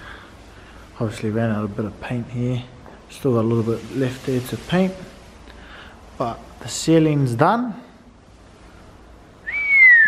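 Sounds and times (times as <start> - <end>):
person whistling sliding note: 9.4 - 10.0.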